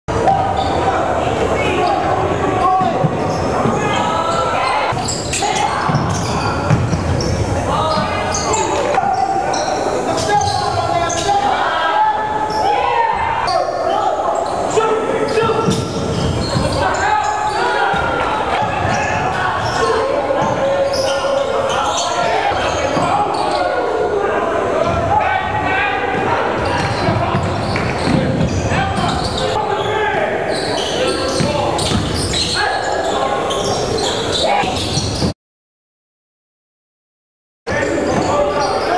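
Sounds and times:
voices of players and spectators: 0.1 - 35.4, 37.7 - 38.9
basketball bouncing on court: 5.8 - 8.0, 26.7 - 29.3, 31.3 - 32.2.

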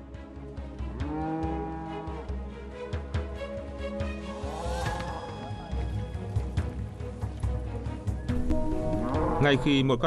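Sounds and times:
background music: 0.0 - 10.0
cow mooing: 0.9 - 2.3.

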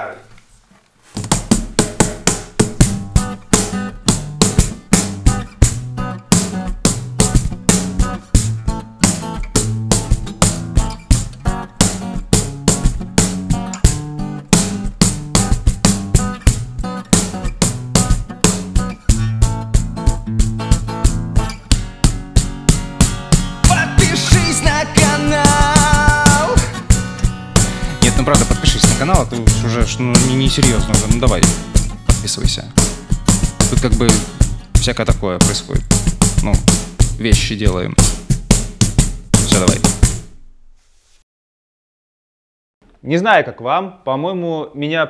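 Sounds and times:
acoustic guitar: 0.3 - 40.8
cajon played by hand: 1.1 - 40.4.

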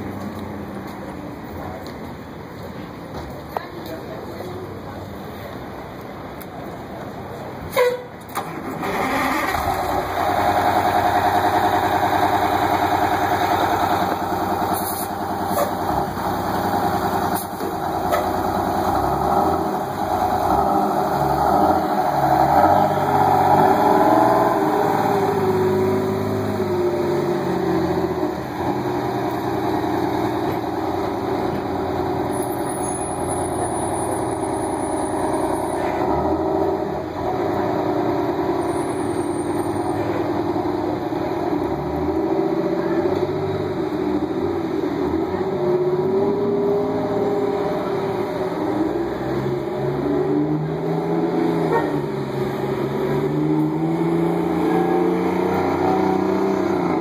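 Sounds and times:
bus engine running: 0.0 - 57.0.

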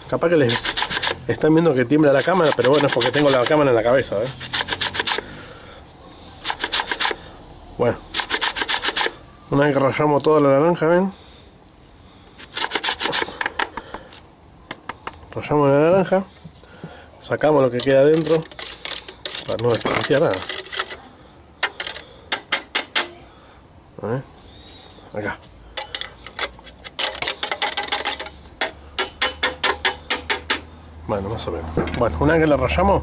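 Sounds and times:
rind grated on metal grater: 0.3 - 1.4, 2.0 - 5.2, 6.4 - 7.2, 8.1 - 9.2, 12.4 - 13.4, 17.7 - 21.0, 21.6 - 22.7, 25.8 - 30.6.

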